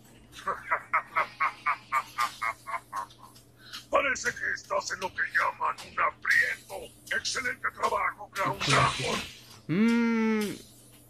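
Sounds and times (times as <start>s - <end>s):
cartoon character laughing: 0.4s - 3.3s.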